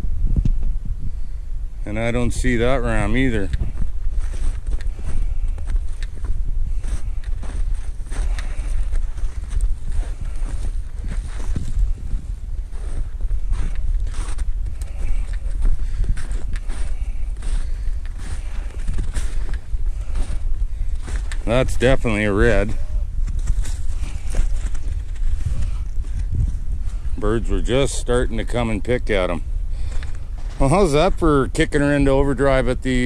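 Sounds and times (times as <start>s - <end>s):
low microphone rumble: 0.0s - 33.0s
footsteps through fresh snow: 2.3s - 27.2s, 28.3s - 31.4s.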